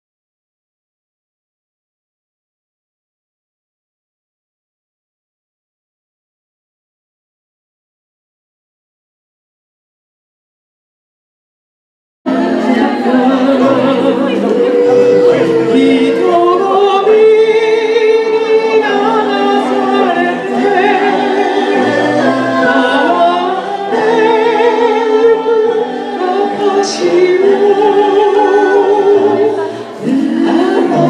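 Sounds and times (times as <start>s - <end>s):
vocal group singing in harmony: 12.3s - 31.0s.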